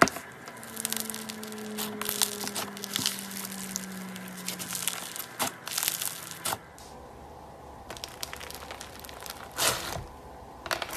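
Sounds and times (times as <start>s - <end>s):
slime crackling and popping: 0.0s - 6.7s, 7.8s - 10.0s.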